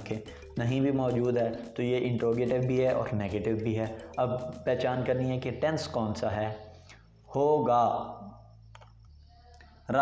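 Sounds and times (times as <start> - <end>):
man speaking: 0.0 - 6.7, 7.3 - 8.4.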